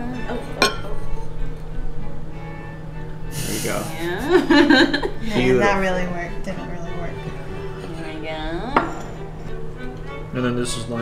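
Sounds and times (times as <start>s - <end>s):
quiet background music: 0.0s - 11.0s
metal spoon clinking on bowl: 0.6s - 1.0s.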